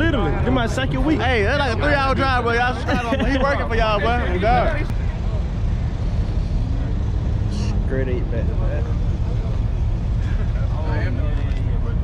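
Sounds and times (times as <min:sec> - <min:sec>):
engines idling deep rumble: 0:00.0 - 0:12.0.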